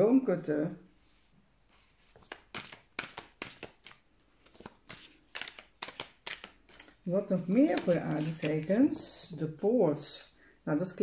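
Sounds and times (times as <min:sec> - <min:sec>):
cards being shuffled: 0:01.7 - 0:09.1.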